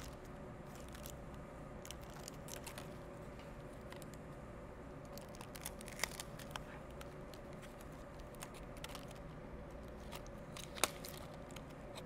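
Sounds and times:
plastic strips crinkling and clicking: 0.0 - 3.0, 5.0 - 12.0.

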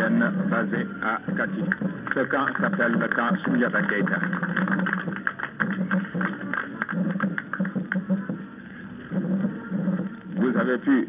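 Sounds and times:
group applause: 1.4 - 8.2.

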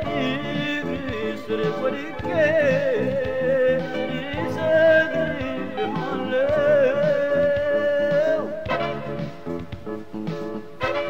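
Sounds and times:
instrumental backing: 0.0 - 11.0.

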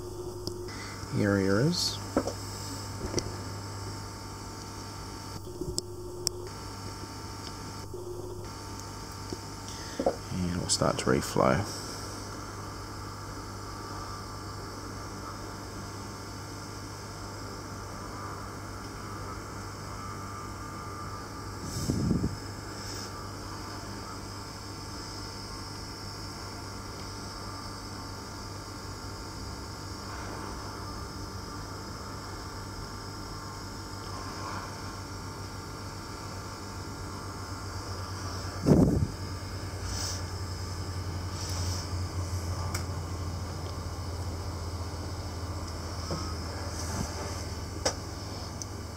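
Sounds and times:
hot-air station blowing: 0.0 - 48.9
low mains hum: 0.0 - 48.9.

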